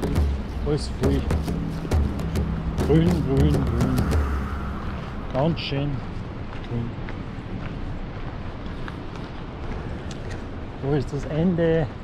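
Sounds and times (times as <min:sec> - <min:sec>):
footsteps on gravel: 0:00.0 - 0:10.5
steady rushing noise: 0:00.0 - 0:12.0.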